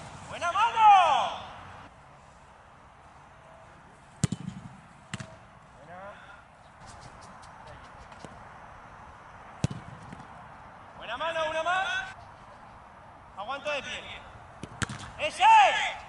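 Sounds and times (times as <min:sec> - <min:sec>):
football kicked thuds: 0:04.2 - 0:05.4, 0:09.6 - 0:10.3.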